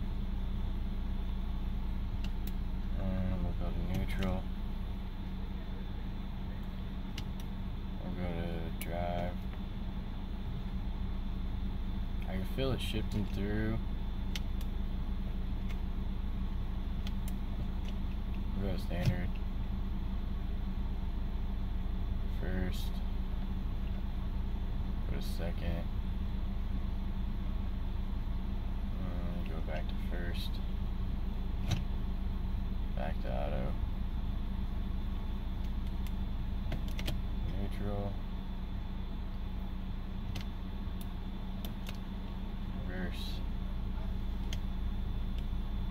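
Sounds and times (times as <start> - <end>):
car engine idling: 0.0 - 45.9
gear selector clicks: 2.2 - 2.6, 3.8 - 4.4, 6.6 - 7.6, 14.3 - 14.7, 17.0 - 19.5, 31.6 - 31.9, 35.6 - 37.7, 40.2 - 42.1, 44.4 - 44.7.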